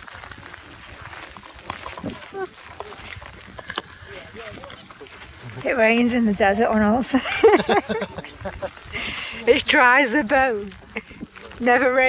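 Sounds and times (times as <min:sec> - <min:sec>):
light rain pattering: 0:00.0 - 0:12.0.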